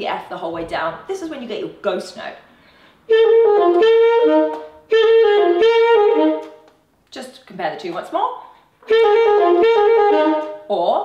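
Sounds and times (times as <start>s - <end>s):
alto saxophone playing: 3.0s - 6.7s, 8.7s - 10.7s.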